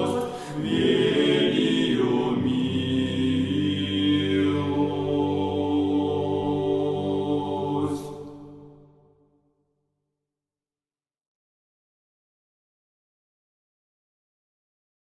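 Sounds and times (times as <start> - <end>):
slow sung chant: 0.0 - 9.2.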